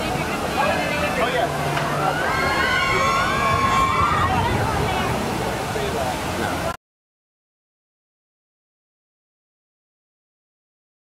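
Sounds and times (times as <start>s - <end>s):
crowd noise: 0.0s - 6.8s
riders screaming: 2.0s - 4.5s.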